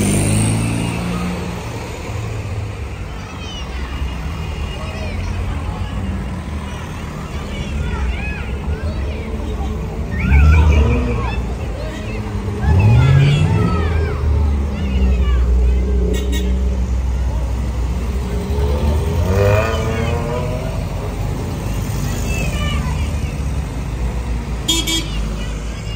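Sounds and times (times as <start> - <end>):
crowd talking: 0.0 - 25.9
old cars driving past: 0.0 - 25.9.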